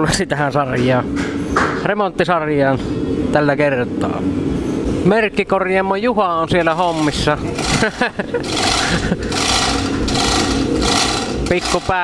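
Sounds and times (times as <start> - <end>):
chain hoist rattling: 6.7 - 12.0.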